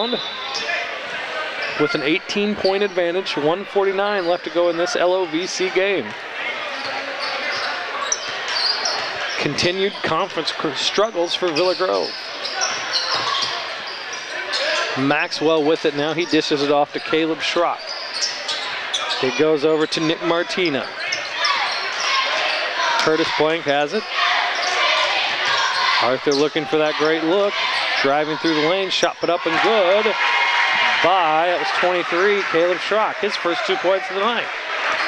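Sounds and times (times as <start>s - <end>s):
sneaker squeaks: 0.0s - 3.2s, 3.9s - 15.1s, 16.0s - 30.0s
crowd chatter: 0.0s - 35.0s.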